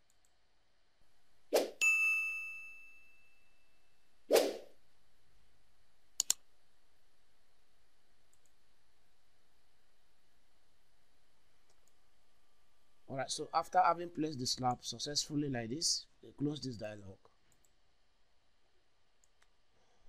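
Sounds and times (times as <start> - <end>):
bell ding: 1.8 - 3.5
whoosh: 4.3 - 4.7
mouse clicks: 6.2 - 6.4.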